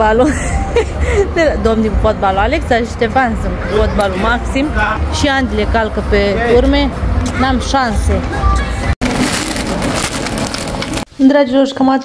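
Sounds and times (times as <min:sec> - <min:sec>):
plastic trolley rattling on tiles: 0:09.0 - 0:11.1.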